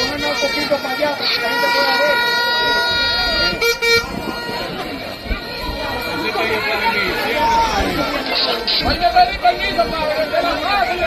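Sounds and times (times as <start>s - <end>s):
horn long steady note: 0.0s - 6.6s
crowd chatter: 0.0s - 11.0s.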